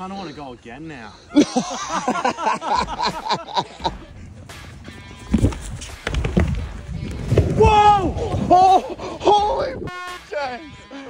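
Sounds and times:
laughter: 0:01.3 - 0:04.2
low rubbery thumps and rumbling: 0:03.8 - 0:09.9.

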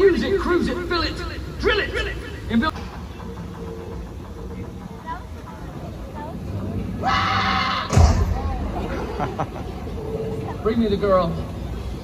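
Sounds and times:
faint distant voices: 0:01.7 - 0:12.0
sharp loud bang: 0:07.9 - 0:08.6.

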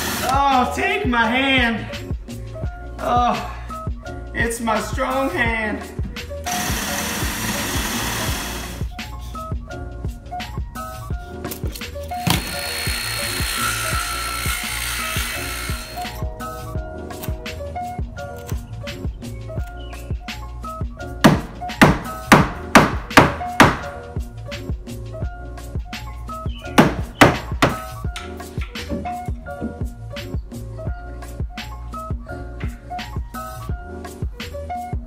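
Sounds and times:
power saw cutting wood: 0:00.0 - 0:00.4, 0:06.4 - 0:08.9, 0:12.1 - 0:16.2
background music with steady beat: 0:00.0 - 0:35.0
hammer blows on wood: 0:21.2 - 0:24.0.

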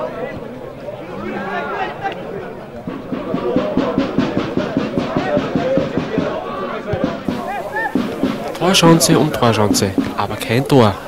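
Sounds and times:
spectators shouting: 0:01.1 - 0:11.0
drumming: 0:02.8 - 0:11.0.

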